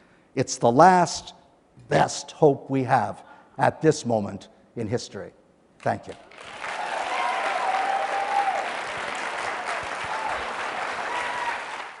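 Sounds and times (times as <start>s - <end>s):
audience applauding: 6.3s - 12.0s.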